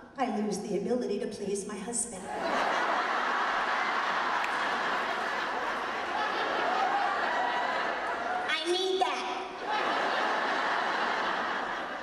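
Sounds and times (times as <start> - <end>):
audience laughing: 2.3 - 8.5, 9.5 - 12.0.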